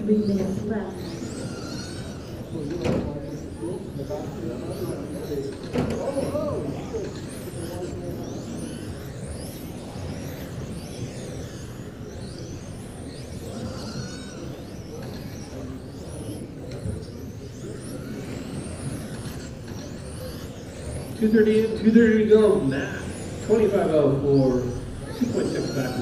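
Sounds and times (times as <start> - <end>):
rc car motors whining: 0.0 - 26.0.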